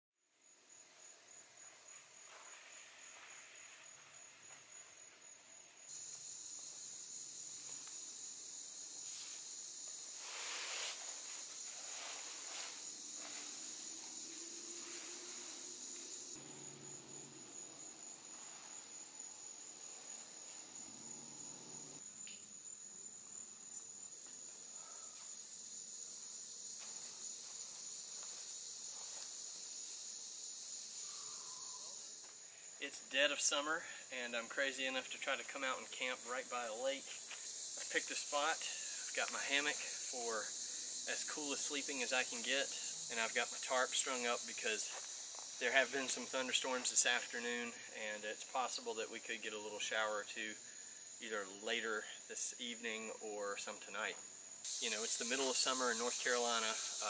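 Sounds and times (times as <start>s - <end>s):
insects chorus: 0.4s - 57.0s
faint rustles: 10.1s - 17.4s.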